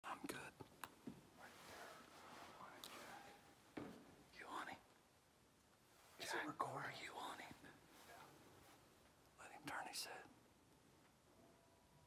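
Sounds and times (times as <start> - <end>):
faint whispering voices: 0.0 - 0.7, 1.3 - 3.6, 4.3 - 5.0, 6.1 - 10.4.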